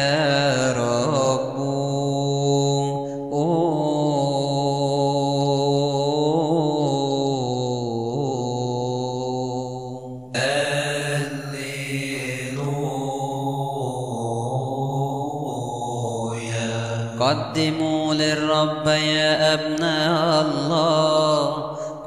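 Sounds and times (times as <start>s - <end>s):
person chanting: 0.0s - 22.0s.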